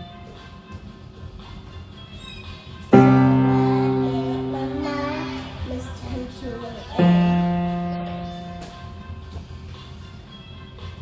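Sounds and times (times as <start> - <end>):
electronic keyboard chord: 0.0 - 0.4, 3.0 - 9.2
girl singing softly: 2.9 - 9.0.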